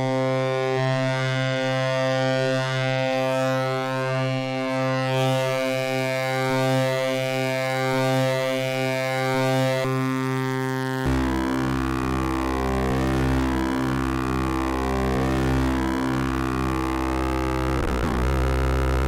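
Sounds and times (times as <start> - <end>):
synthesizer low drone: 11.0 - 19.0.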